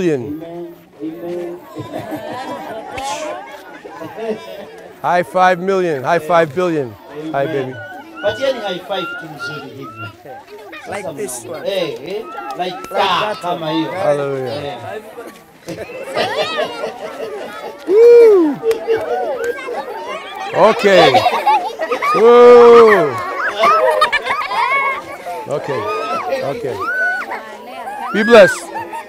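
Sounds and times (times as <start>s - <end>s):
children chattering and calling out: 0.0s - 29.0s.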